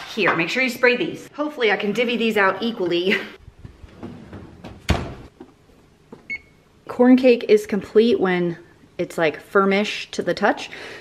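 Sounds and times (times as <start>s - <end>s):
thump: 4.0s - 5.3s
oven timer beep: 6.3s - 6.6s.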